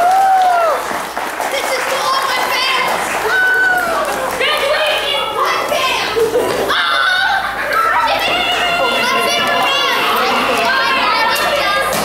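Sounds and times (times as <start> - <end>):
adults talking: 1.4 - 12.0
children shouting and chattering: 1.4 - 12.0.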